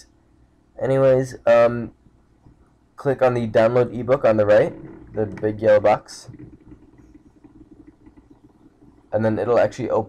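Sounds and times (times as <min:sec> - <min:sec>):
faint low rumble: 0:00.0 - 0:10.0.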